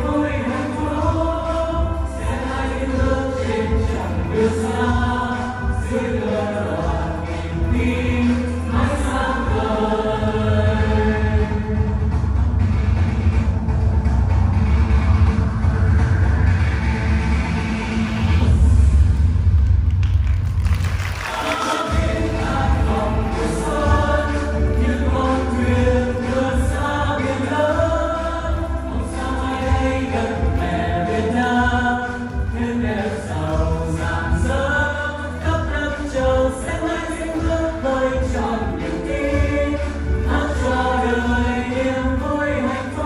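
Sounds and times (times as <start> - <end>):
group of voices singing: 0.0 - 12.4, 21.1 - 43.0
backing music with heavy bass: 0.0 - 43.0.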